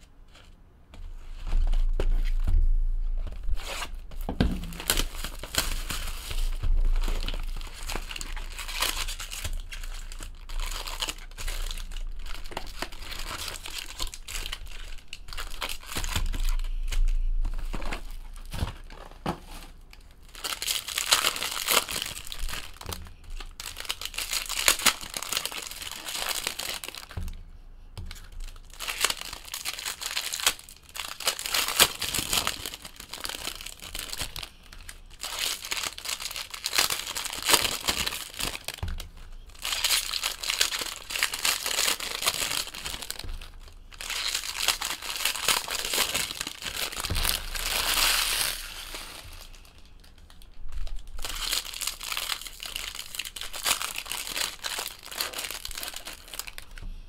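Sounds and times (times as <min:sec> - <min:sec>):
foil wrappers tearing and crinkling: 0:03.4 - 0:27.3, 0:28.0 - 0:56.8.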